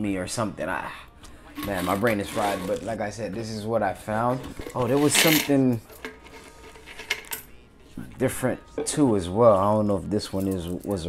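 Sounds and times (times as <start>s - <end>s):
coins clinking on a desk: 1.6s - 2.8s, 4.5s - 7.6s.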